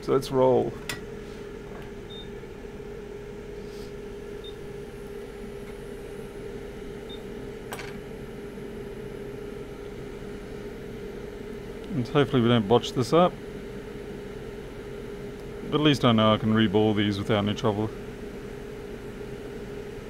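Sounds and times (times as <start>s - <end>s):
hot air station fan hum: 0.0s - 20.0s.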